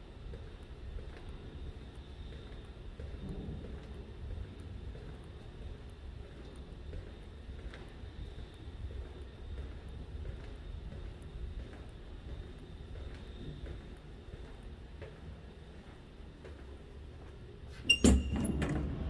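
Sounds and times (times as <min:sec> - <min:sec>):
low machinery rumble: 0:00.0 - 0:19.0.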